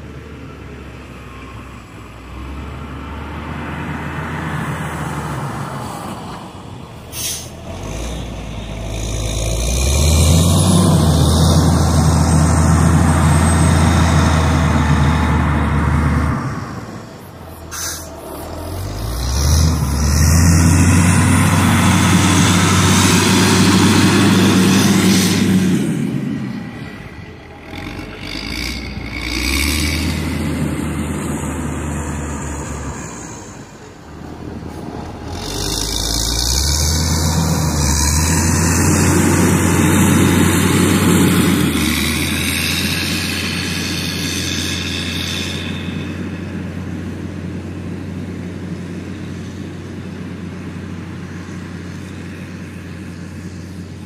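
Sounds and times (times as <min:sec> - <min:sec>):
diesel engine under load: 0:00.0 - 0:54.0.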